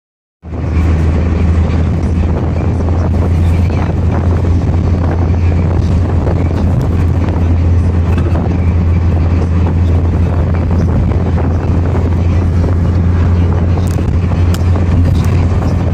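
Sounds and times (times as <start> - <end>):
car engine and road rumble: 0.4 - 15.9.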